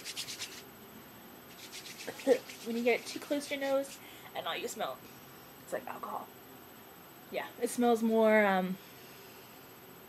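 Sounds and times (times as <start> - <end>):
hands rubbing sanitizer gel: 1.5 - 3.0.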